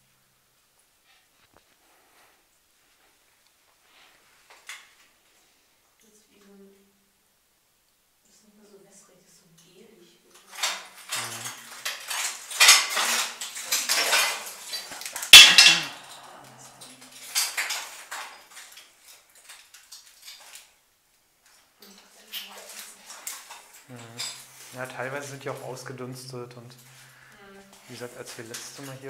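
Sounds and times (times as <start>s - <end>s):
metal and glass debris clattering: 10.4s - 20.7s.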